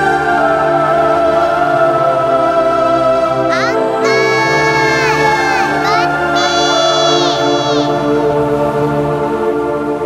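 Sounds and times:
background music: 0.0s - 10.0s
little girl calling out: 3.5s - 8.0s.

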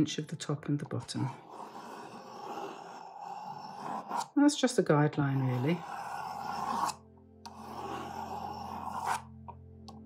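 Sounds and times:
pencil scraping across paper: 1.0s - 4.4s, 5.3s - 9.4s.

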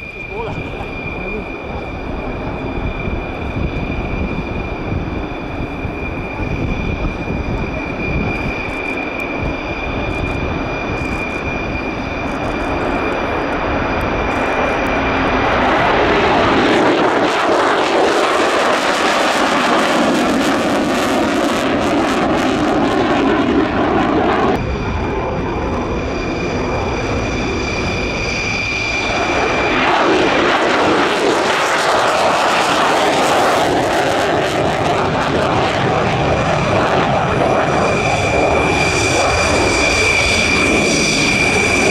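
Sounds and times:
jet engine roar with whine: 0.0s - 41.9s.

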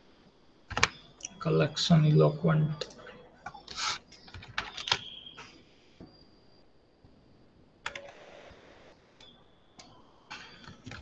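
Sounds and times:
computer keyboard keystrokes: 0.7s - 1.0s, 4.3s - 5.1s.

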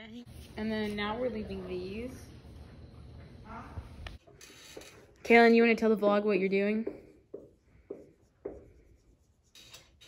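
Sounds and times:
marker writing on whiteboard: 4.2s - 5.1s, 6.8s - 10.0s.

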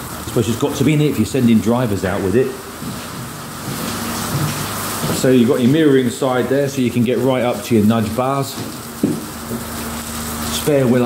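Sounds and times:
rain on a metal roof: 0.0s - 11.0s.

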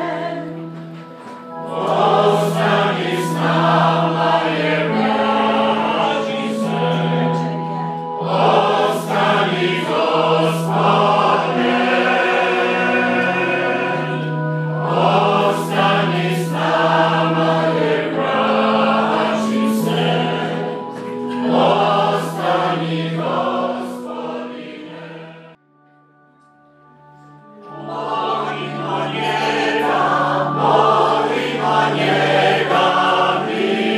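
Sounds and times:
church choir singing a hymn: 0.0s - 25.6s, 27.4s - 33.9s
organ accompaniment: 0.0s - 33.9s.

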